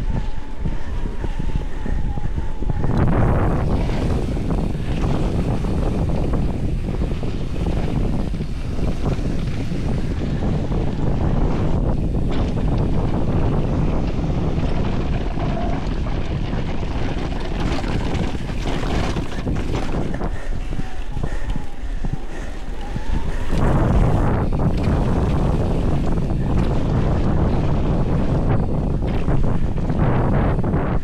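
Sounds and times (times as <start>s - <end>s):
bike rattling over rough ground: 0.0s - 31.0s
wind rushing over microphone: 0.0s - 31.0s.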